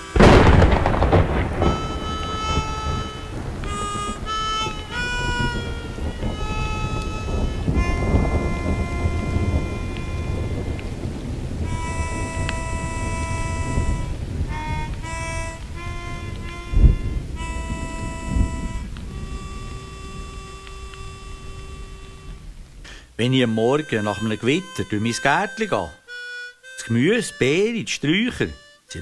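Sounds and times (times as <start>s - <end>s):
rain: 0.0s - 25.9s
harmonica slow melody: 0.0s - 29.0s
rumbling thunder: 0.2s - 23.2s
loud thunderclaps: 0.2s - 24.8s.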